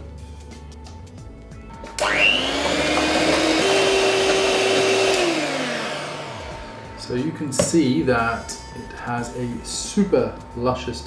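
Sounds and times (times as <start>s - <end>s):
electric hand mixer whirring: 1.8s - 9.8s.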